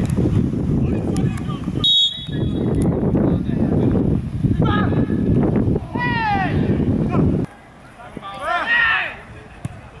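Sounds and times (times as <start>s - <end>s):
man shouting: 4.6s - 5.1s, 5.8s - 7.2s, 8.4s - 9.2s.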